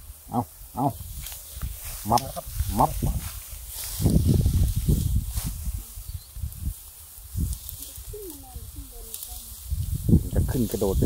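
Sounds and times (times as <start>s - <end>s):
man calling out: 0.3s - 1.1s, 2.0s - 3.2s.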